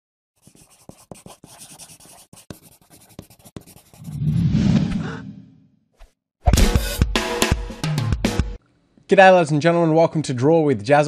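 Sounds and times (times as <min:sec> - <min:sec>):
pencil sketching on paper: 0:00.4 - 0:04.2.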